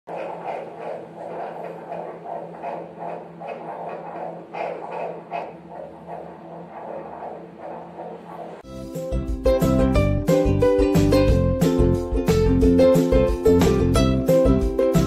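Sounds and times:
fetal heartbeat through doppler speaker: 0.1s - 8.6s.

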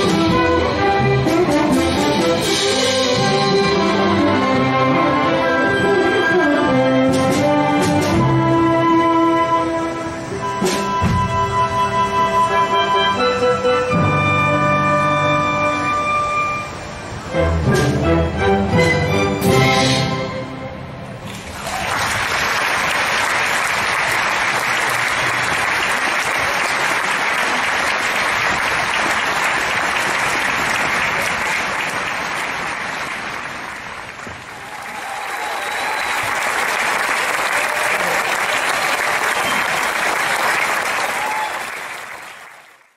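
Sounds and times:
audience applauding: 21.3s - 42.9s.

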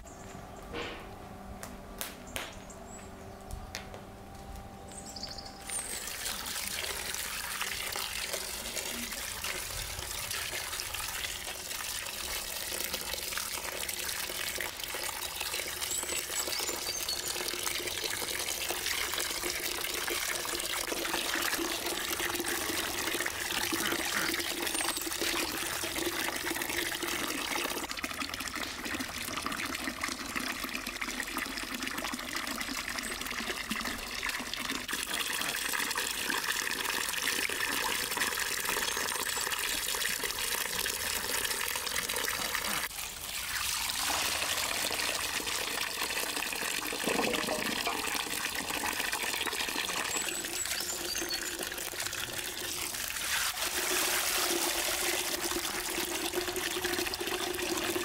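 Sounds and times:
water from tap pouring into basin: 5.7s - 58.0s.

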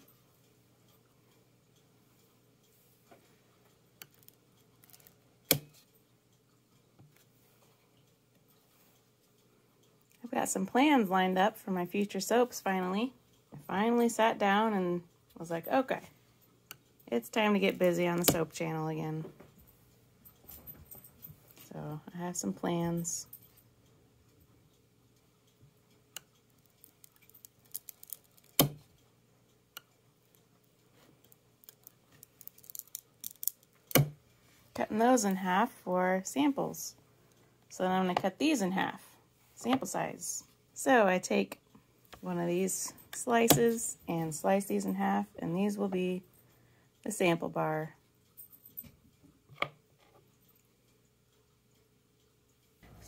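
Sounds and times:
soap bars clicking and tapping: 31.6s - 34.2s.

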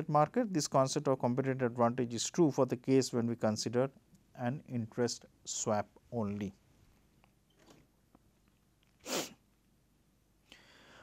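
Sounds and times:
person speaking: 0.0s - 6.7s
sharp breath burst: 9.0s - 9.4s, 10.5s - 11.0s
faint breath: 10.4s - 11.0s.

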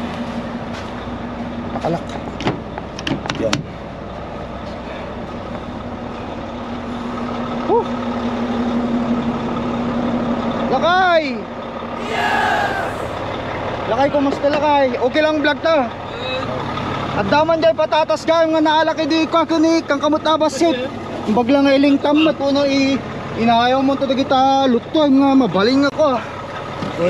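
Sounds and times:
diesel truck engines idling: 3.7s - 27.0s.

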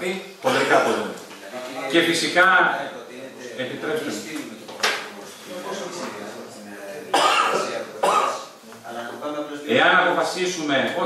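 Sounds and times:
person coughing: 7.2s - 8.5s.

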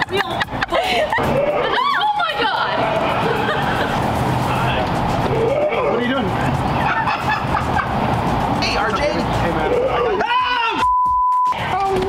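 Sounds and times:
woman shrieking: 1.1s - 3.5s.

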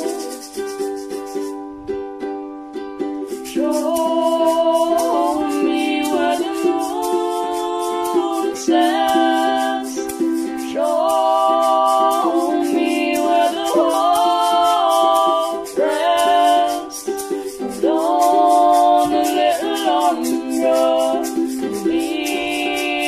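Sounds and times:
person singing long sliding notes: 0.0s - 0.9s, 3.3s - 23.0s.

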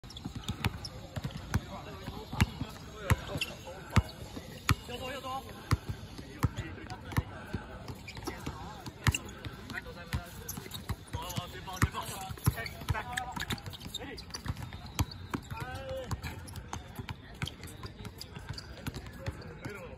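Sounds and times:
basketball bouncing on hard court: 0.1s - 4.1s, 8.0s - 19.7s.

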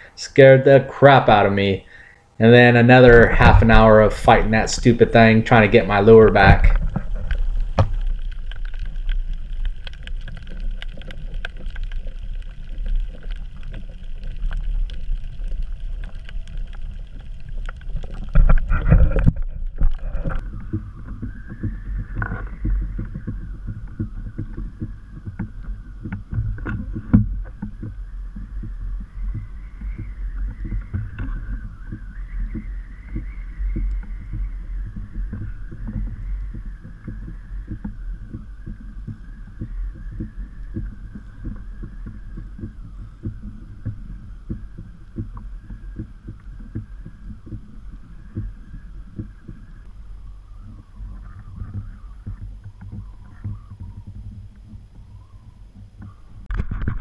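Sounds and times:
faint wavering hum: 0.0s - 57.0s
water lapping against kayak hull: 1.3s - 57.0s.

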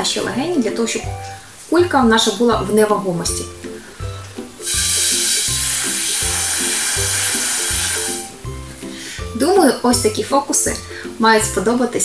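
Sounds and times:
breath blown through a straw: 3.8s - 9.3s.

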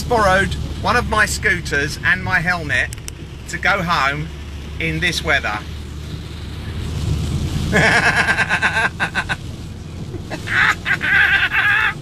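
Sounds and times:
vehicle rumble from inside cabin: 0.0s - 12.0s
man laughing: 7.7s - 9.5s, 10.1s - 12.0s.

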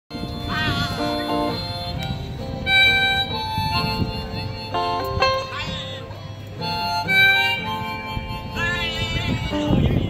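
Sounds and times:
harmonica: 0.1s - 10.0s.

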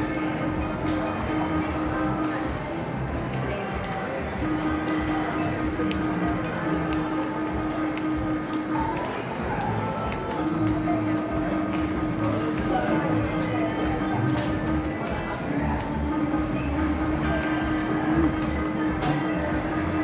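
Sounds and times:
slot machine game music: 0.0s - 20.0s.

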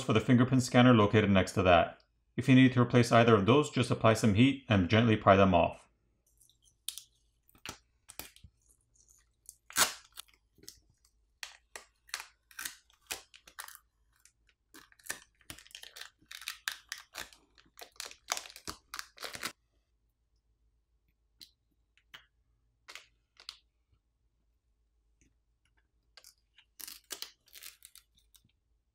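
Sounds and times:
plastic film crinkling as peeled: 6.9s - 19.6s, 26.7s - 28.4s.

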